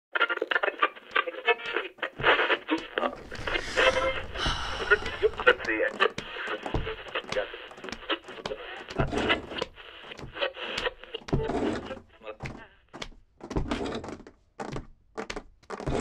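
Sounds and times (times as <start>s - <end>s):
indistinct voices: 3.0s - 9.4s.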